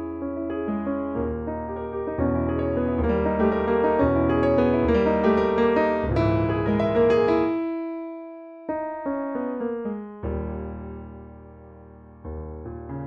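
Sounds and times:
piano chords: 0.0s - 13.0s.

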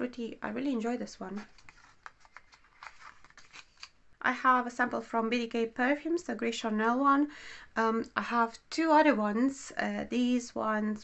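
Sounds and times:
paper card rustling: 1.2s - 4.0s.

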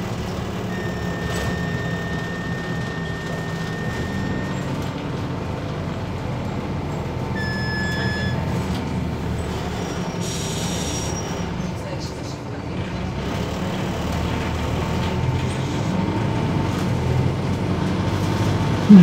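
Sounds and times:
bus diesel engine rumble: 0.0s - 19.0s
road noise: 0.0s - 19.0s.

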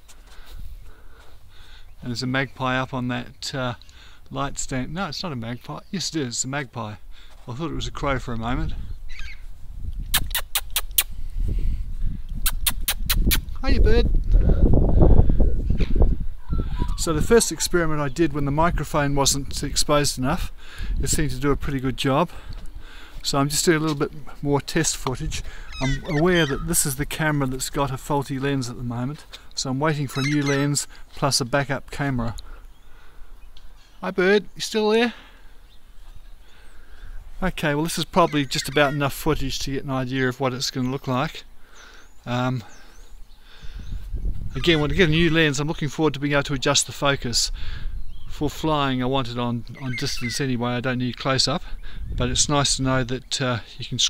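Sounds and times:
man speaking: 23.2s - 32.4s, 37.4s - 41.4s, 44.6s - 47.4s, 48.6s - 51.6s
magpie chattering: 25.7s - 27.0s, 30.0s - 30.8s, 38.0s - 39.2s, 49.8s - 50.6s.

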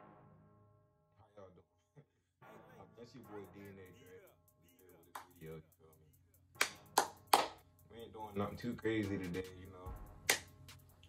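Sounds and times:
sharp hand claps: 5.2s - 5.4s, 6.6s - 7.6s, 10.2s - 10.6s.

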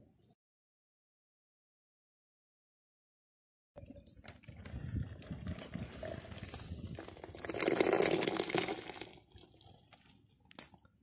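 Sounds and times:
tea pouring into a mug: 4.6s - 10.2s.

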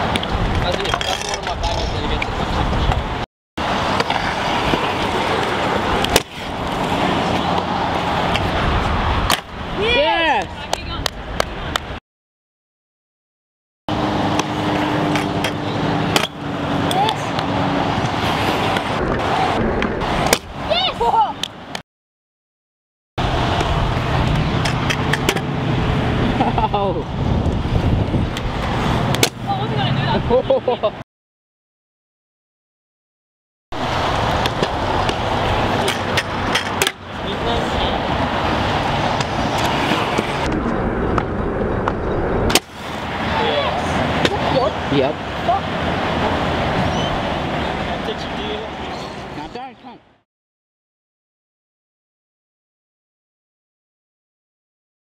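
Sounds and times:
wind buffeting microphone: 0.0s - 3.2s, 23.2s - 30.5s
scooter wheels rolling on concrete: 0.0s - 12.0s, 13.9s - 21.4s, 23.2s - 30.2s, 33.8s - 49.6s
scooter clacking on concrete: 34.4s - 37.2s.

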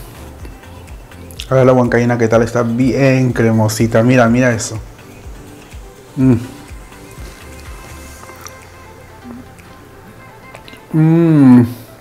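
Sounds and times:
soft background music: 0.0s - 12.0s
man humming approval: 6.1s - 6.7s, 10.8s - 11.8s.

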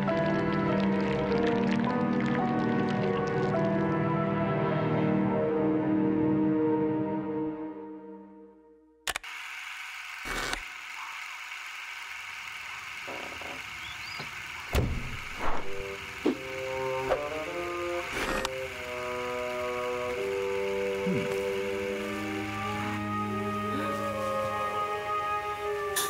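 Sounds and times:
sharp click: 9.1s - 9.3s.

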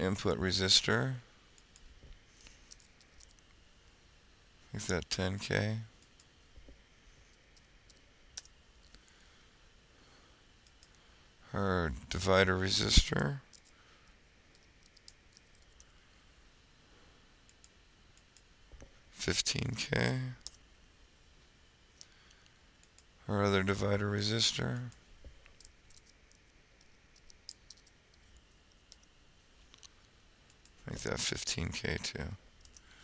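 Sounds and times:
keyboard and mouse clicks: 14.5s - 15.9s, 25.5s - 29.1s.

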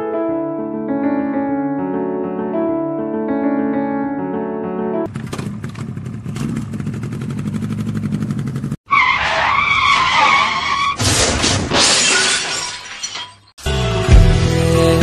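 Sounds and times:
tyres screeching: 8.9s - 13.2s
loud crash with breaking glass: 10.3s - 13.5s.

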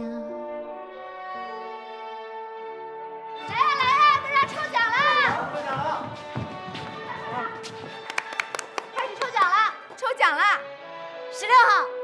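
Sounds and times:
background music: 0.0s - 12.0s
hand claps: 3.5s - 10.0s.

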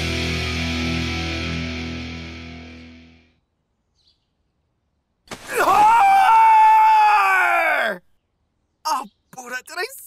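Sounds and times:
person screaming: 5.5s - 8.0s.

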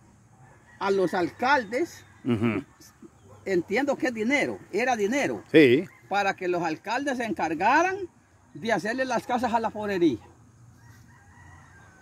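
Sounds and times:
rooster crowing faintly: 10.7s - 12.0s.

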